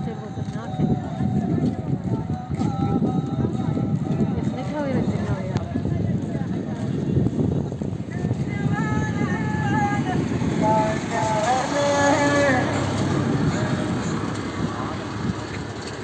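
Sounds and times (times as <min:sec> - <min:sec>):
low outdoor rumble: 0:00.0 - 0:16.0
person singing drawn-out notes: 0:00.6 - 0:04.6.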